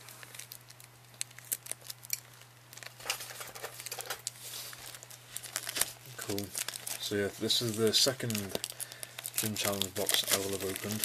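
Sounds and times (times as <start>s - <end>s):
plastic shrink-wrap crinkling: 0.0s - 11.0s.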